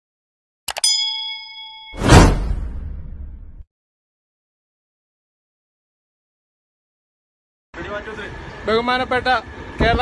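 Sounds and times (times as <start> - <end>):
notification bell chord: 0.7 - 2.3.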